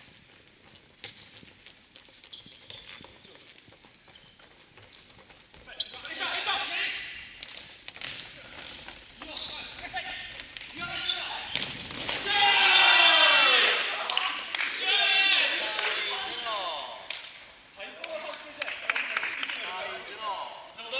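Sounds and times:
players shouting: 6.0s - 7.1s, 9.2s - 16.8s
ball bouncing on wooden floor: 7.4s - 12.2s.

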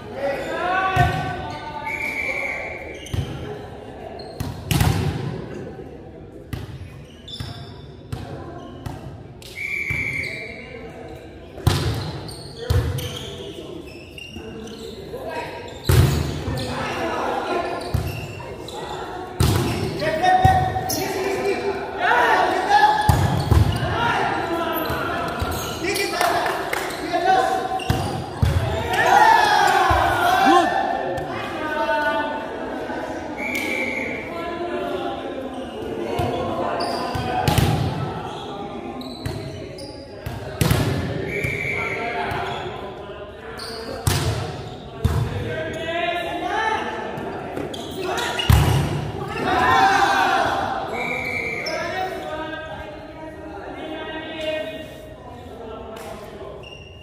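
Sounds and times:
volleyball strikes echoing: 4.4s - 5.5s, 19.4s - 20.8s, 22.9s - 23.9s, 37.1s - 38.1s
players shouting: 28.4s - 31.7s.

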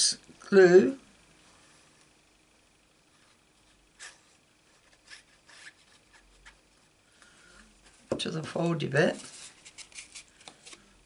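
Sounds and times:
card rustling: 9.0s - 10.9s.

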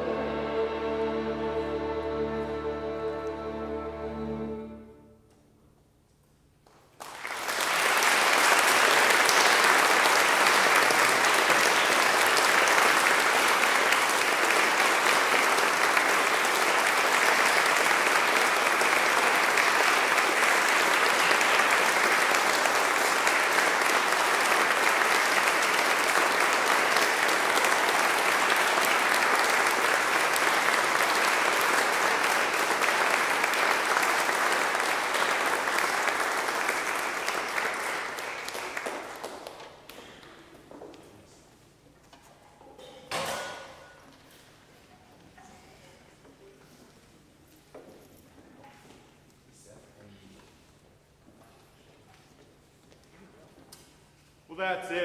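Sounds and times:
audience applauding: 6.9s - 40.3s.

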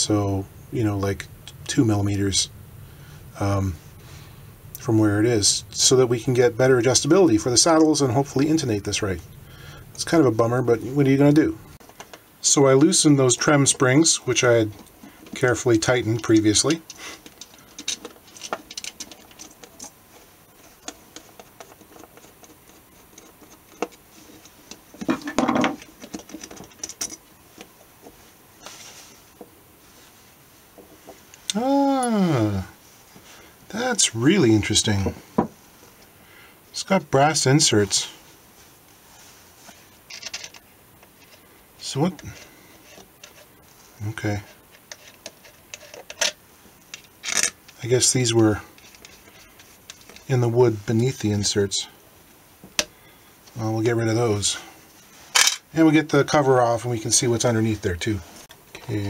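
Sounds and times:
handling noise: 0.0s - 31.5s.

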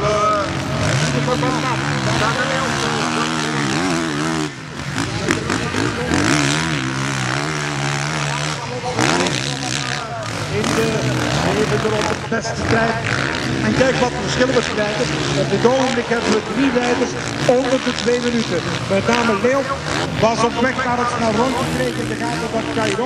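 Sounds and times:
motorcycle engines revving: 0.0s - 23.0s.

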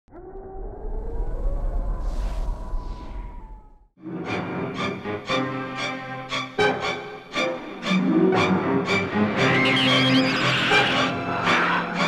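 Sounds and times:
deep rumble: 0.1s - 4.0s
eerie sustained rising tones: 0.1s - 4.0s.

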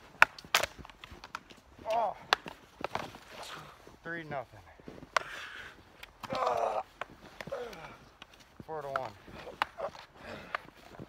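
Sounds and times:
wooden sticks clashing: 0.1s - 3.6s.

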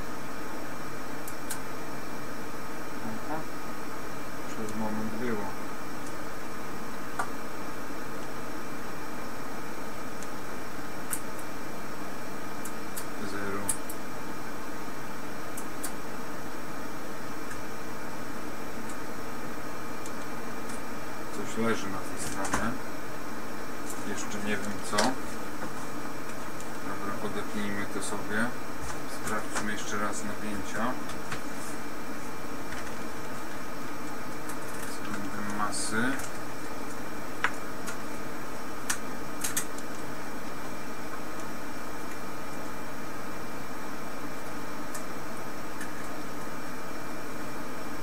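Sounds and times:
background hiss and hum: 0.0s - 48.0s.

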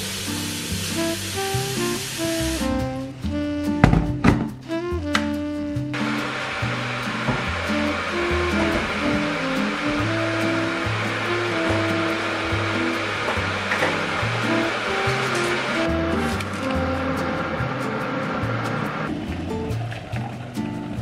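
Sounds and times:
electric kettle hissing: 0.0s - 2.8s, 6.0s - 16.5s
music with slow bass line: 0.0s - 21.0s.

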